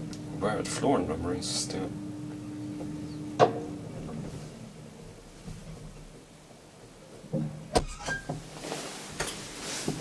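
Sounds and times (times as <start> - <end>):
wooden elevator doors opening: 7.7 - 8.6.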